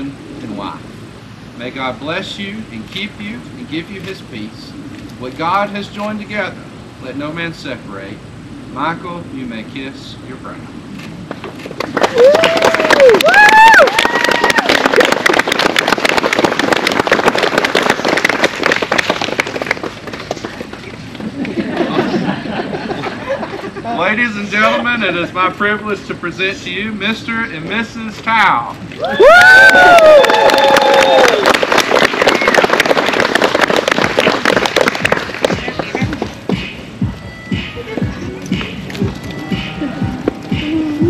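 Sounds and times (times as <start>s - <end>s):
crowd clapping and cheering: 11.7s - 20.9s, 29.0s - 36.7s
long whoop: 12.1s - 14.8s, 29.0s - 31.5s.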